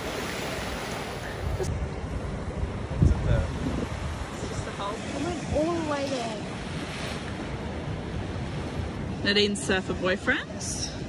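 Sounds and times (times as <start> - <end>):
ocean surf washing on shore: 0.0 - 11.0
wind buffeting microphone: 0.1 - 11.0.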